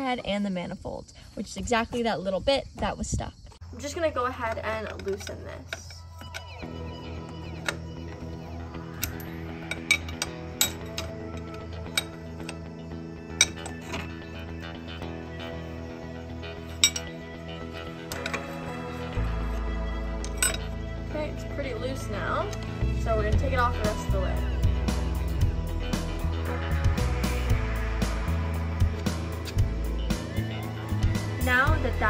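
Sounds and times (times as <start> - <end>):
background music: 3.8 - 32.0
wrench clinking on metal fitting: 16.7 - 17.2, 20.2 - 20.7.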